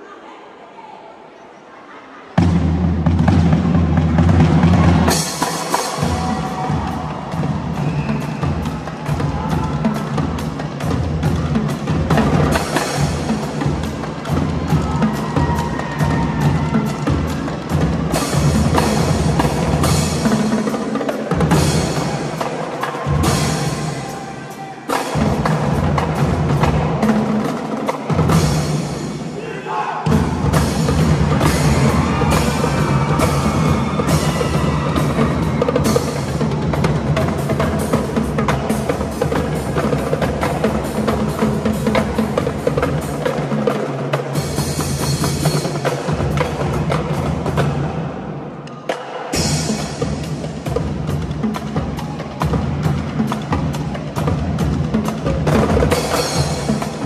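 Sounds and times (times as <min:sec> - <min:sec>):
drumline playing drum cadence: 0:02.3 - 0:57.0.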